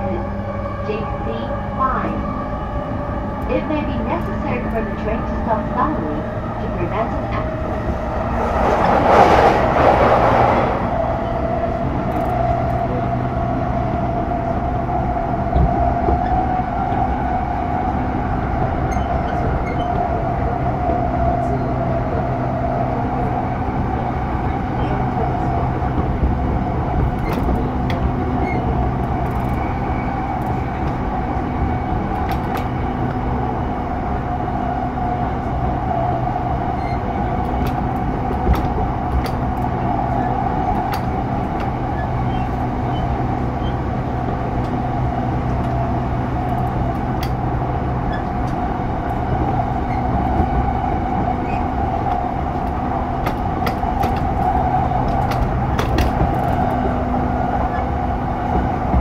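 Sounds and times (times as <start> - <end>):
train wheels droning: 0.0 - 59.0.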